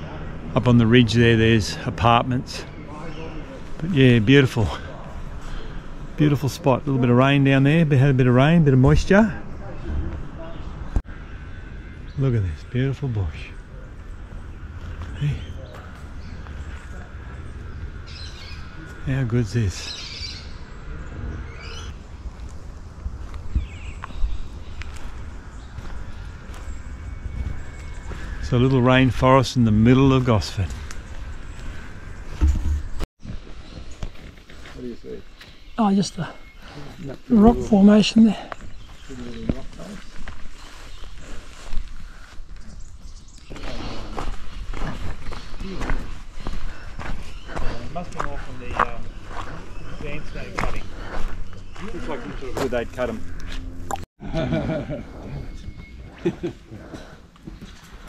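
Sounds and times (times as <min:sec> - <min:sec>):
men talking: 0:00.0 - 0:11.0, 0:12.0 - 0:17.8, 0:18.4 - 0:20.4, 0:28.0 - 0:31.0, 0:34.6 - 0:41.7, 0:43.4 - 0:53.5, 0:54.2 - 0:57.7
footsteps on dirt and leaves: 0:13.9 - 0:19.1, 0:21.9 - 0:35.7, 0:37.4 - 0:53.9.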